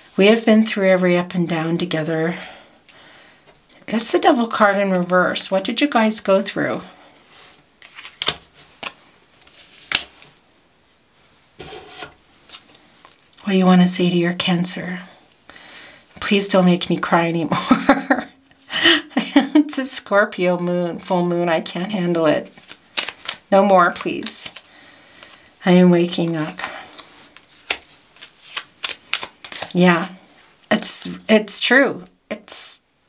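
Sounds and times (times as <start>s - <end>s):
cards snapping and tapping: 22.7s - 23.4s, 27.6s - 29.7s.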